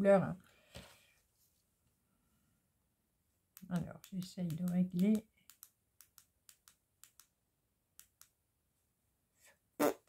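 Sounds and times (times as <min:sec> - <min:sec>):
faint sharp clicks: 0:03.6 - 0:07.3.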